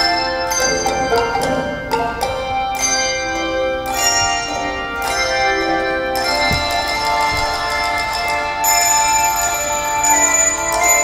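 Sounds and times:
handbells ringing in chords: 0:00.0 - 0:11.0.

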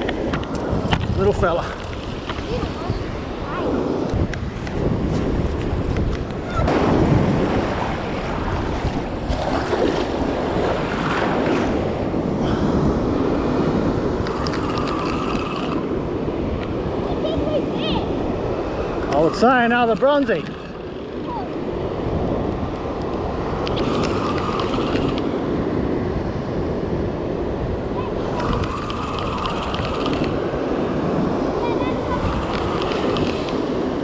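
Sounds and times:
ocean surf breaking: 0:00.0 - 0:34.0
wind buffeting microphone: 0:00.0 - 0:34.0.

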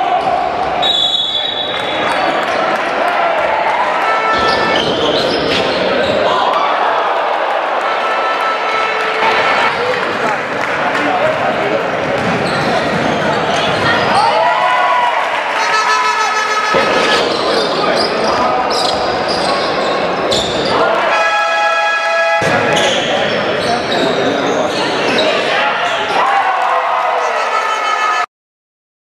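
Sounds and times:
voices of players and spectators: 0:00.0 - 0:28.3
sneaker squeaks on hardwood: 0:04.2 - 0:06.3, 0:12.2 - 0:14.1, 0:22.6 - 0:25.5.

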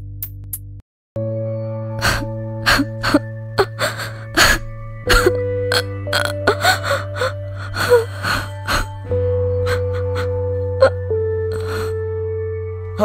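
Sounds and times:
droning background score: 0:01.9 - 0:13.0
woman sobbing: 0:02.0 - 0:12.0.

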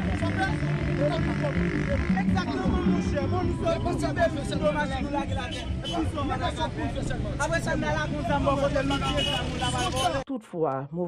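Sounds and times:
men talking over one another: 0:00.0 - 0:11.0.

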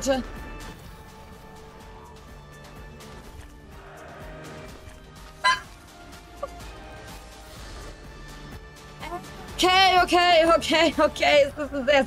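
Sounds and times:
slot game background music: 0:00.0 - 0:12.0.

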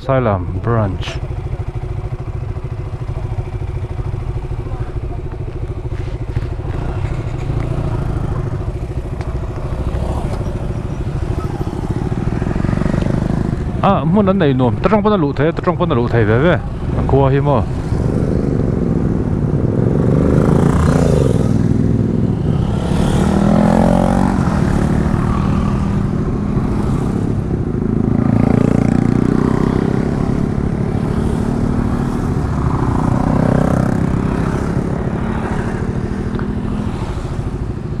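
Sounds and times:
motorcycles passing by: 0:00.0 - 0:38.0
steady low rumble: 0:12.0 - 0:20.0.

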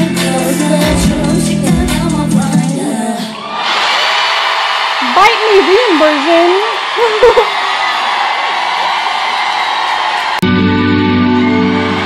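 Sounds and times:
live pop performance: 0:00.0 - 0:03.7
crowd cheering and screaming: 0:03.1 - 0:12.0
person whooping: 0:06.7 - 0:07.8.

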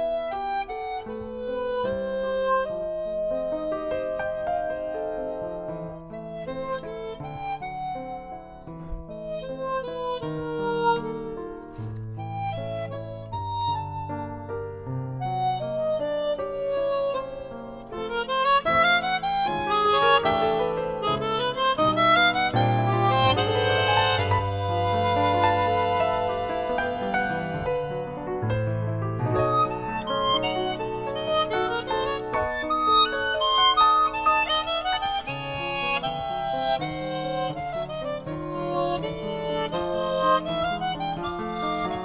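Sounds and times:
chromatic harmonica melody: 0:00.0 - 0:42.0
piano accompaniment: 0:00.0 - 0:42.0.

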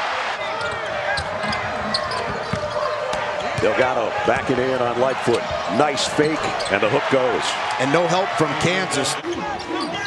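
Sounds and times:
arena crowd noise: 0:00.0 - 0:10.0
sneakers squeaking: 0:00.4 - 0:03.7, 0:05.3 - 0:06.8, 0:09.2 - 0:10.0.

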